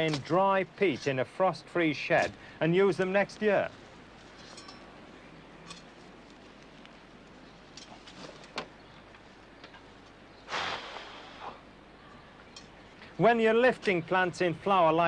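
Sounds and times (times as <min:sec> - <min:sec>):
plants rustling: 0:02.1 - 0:10.2.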